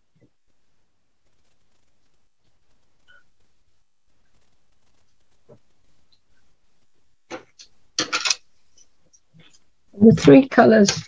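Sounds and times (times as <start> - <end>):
pencils rattling: 7.3 - 11.0
wooden pencils clicking: 7.4 - 9.6, 10.6 - 11.0.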